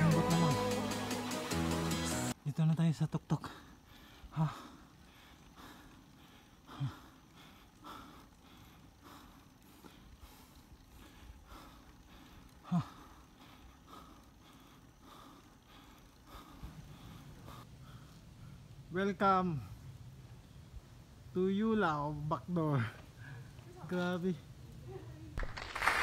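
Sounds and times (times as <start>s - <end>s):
wind and tyre hiss: 2.1s - 25.3s
cyclist breathing hard: 3.4s - 18.9s, 22.6s - 23.8s.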